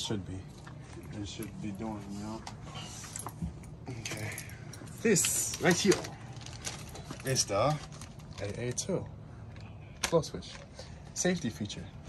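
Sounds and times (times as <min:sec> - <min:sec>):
metal parts clinking and rattling: 0:03.1 - 0:08.8.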